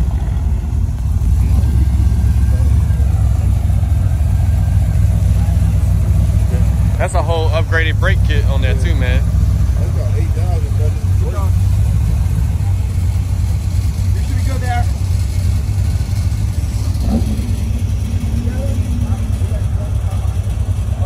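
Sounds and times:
car engine low rumble: 0:00.0 - 0:21.0
voices: 0:00.0 - 0:21.0.

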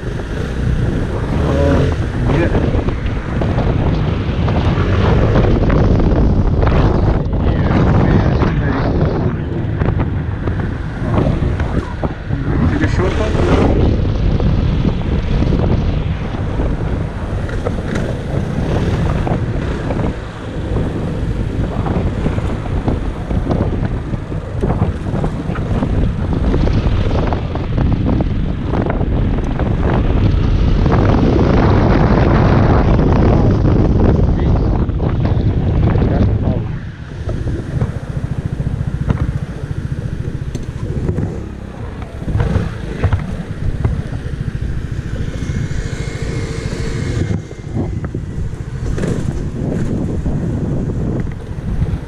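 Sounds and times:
scooter engine running: 0:00.0 - 0:07.6, 0:09.4 - 0:33.9, 0:37.0 - 0:52.0
wind buffeting microphone: 0:00.0 - 0:52.0.

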